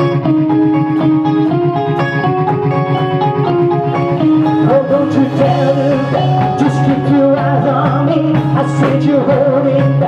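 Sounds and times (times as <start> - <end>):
drum kit beat: 0.0 - 10.0
electric guitar chords: 0.0 - 10.0
keyboard chords: 0.0 - 10.0.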